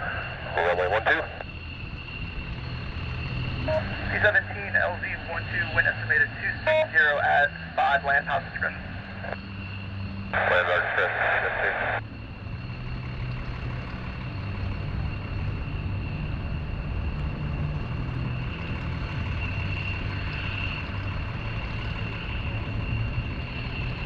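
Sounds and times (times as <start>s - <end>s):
jet aircraft flying past: 0.0s - 24.0s.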